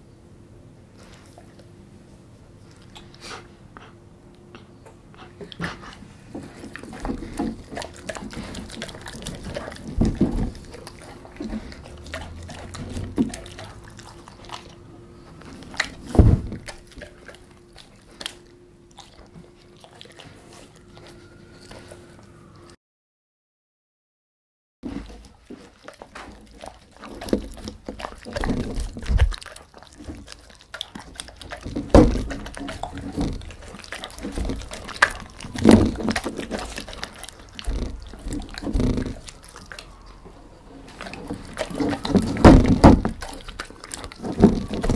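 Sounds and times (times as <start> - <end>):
dog licking and chewing: 1.0 - 1.9, 2.5 - 22.7, 24.9 - 44.9.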